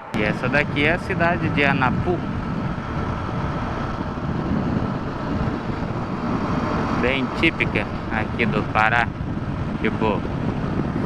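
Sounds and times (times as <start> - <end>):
motorcycle engine drone: 0.0 - 11.0
road noise: 0.0 - 11.0
wind noise: 0.0 - 11.0.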